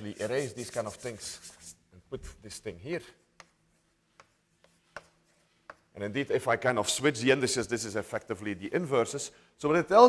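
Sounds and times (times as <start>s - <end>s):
chalk tapping on blackboard: 3.2s - 6.0s.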